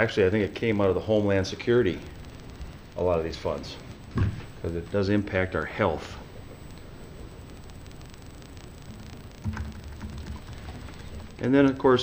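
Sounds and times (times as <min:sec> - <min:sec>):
keyboard typing: 0:08.9 - 0:11.4.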